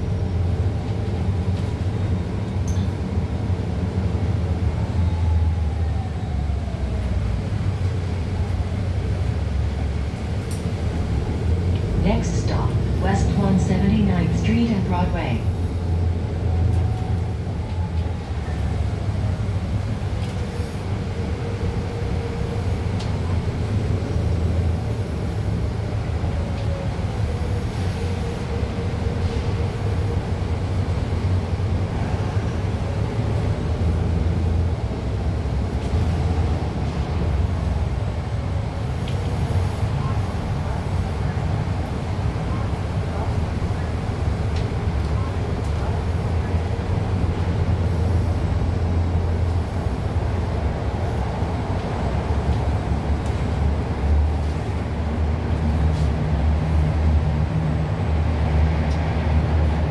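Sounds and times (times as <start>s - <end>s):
bus drivetrain and road rumble: 0.0s - 59.9s.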